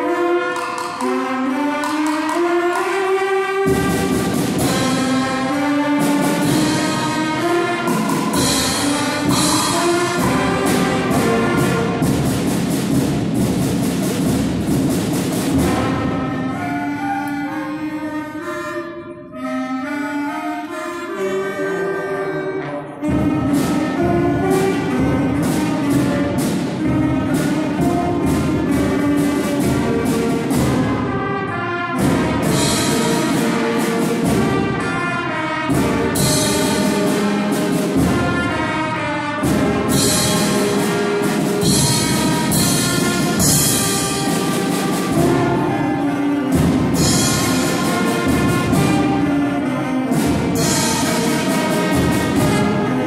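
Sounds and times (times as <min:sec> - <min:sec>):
percussion fast steady beat: 0:00.0 - 0:18.0, 0:23.0 - 0:53.0
loud accented band hits: 0:00.0 - 0:18.2, 0:23.0 - 0:53.0
concert band playing: 0:00.0 - 0:53.0.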